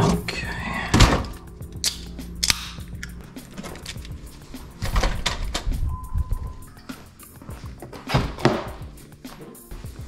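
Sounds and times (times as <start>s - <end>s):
steady low hum: 0.0s - 7.9s
background music: 0.0s - 10.0s.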